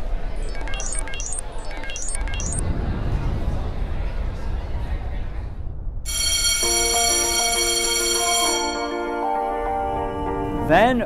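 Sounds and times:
bell-like chime ringing: 6.1s - 9.3s.

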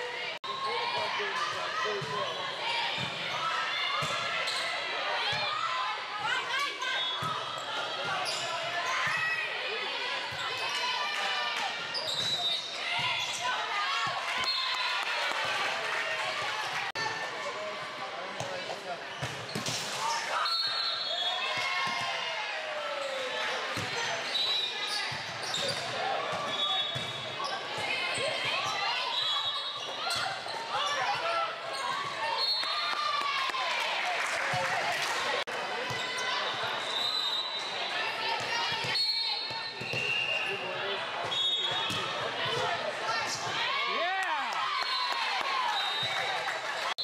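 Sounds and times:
voices calling out and chattering: 0.0s - 47.0s
sneakers squeaking on court floor: 1.9s - 4.8s, 7.0s - 9.5s, 11.9s - 14.6s, 18.4s - 22.0s, 23.0s - 32.8s, 38.4s - 42.7s.

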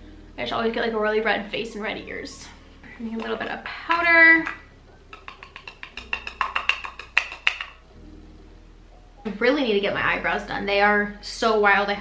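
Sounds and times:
brush tapping in plastic compact: 3.2s - 7.8s.

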